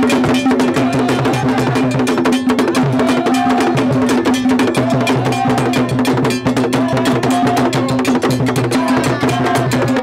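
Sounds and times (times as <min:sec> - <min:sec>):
drum ensemble playing: 0:00.0 - 0:10.0.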